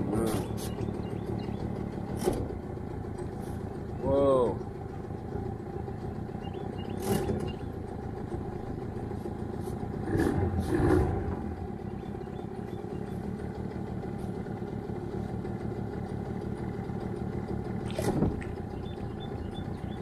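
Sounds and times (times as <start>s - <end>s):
outboard motor running: 0.0s - 20.0s.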